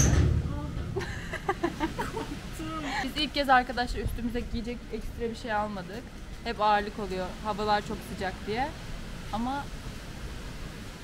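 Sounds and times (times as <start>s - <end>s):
door slamming: 0.0s - 1.0s
woman laughing: 0.9s - 3.3s.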